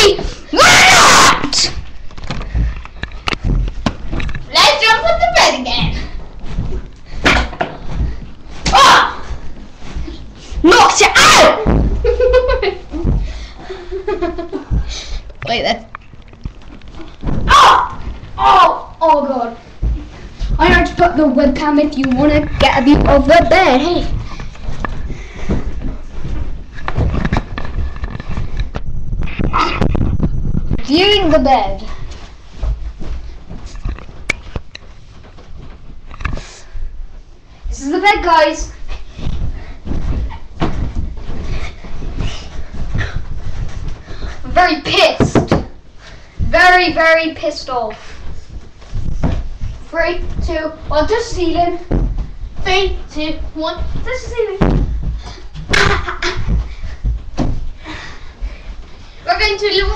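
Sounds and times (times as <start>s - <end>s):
person bouncing on a bed: 0.0s - 59.9s
girl shrieking and squealing: 0.5s - 1.8s, 17.5s - 18.9s.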